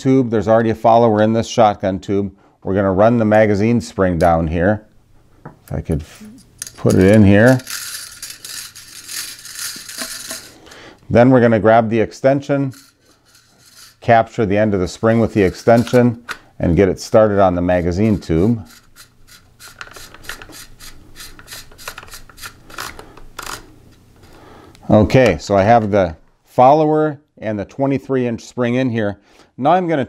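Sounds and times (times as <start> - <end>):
metal threads clicking and scraping: 6.2 - 10.8, 12.5 - 14.2, 14.9 - 16.4, 17.7 - 23.7
metal spring rattling in tube: 6.4 - 10.6, 12.6 - 14.0.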